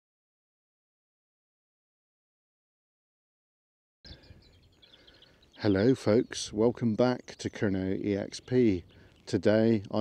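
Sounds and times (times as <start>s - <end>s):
outdoor background noise: 4.1s - 10.0s
songbirds chirping: 4.1s - 10.0s.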